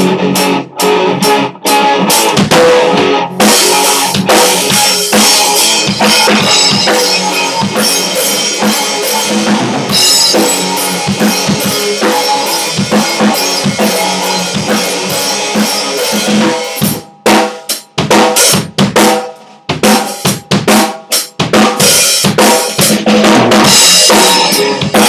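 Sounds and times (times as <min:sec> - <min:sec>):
electric guitar: 0:00.0 - 0:17.0, 0:23.0 - 0:25.0
rock drum kit: 0:00.0 - 0:25.0.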